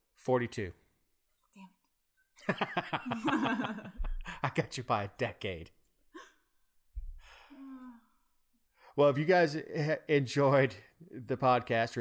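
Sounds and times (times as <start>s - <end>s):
soft low thump: 4.0s - 4.3s
person sighing: 7.2s - 8.3s.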